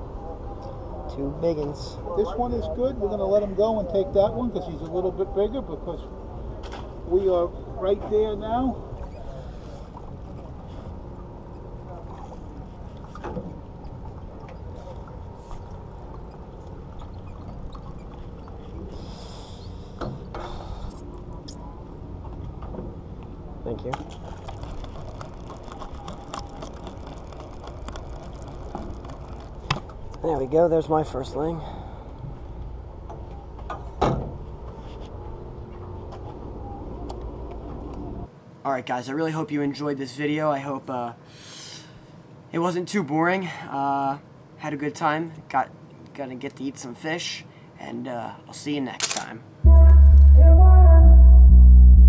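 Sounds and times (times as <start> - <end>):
boat low rumble: 0.0 - 38.3, 49.6 - 52.0.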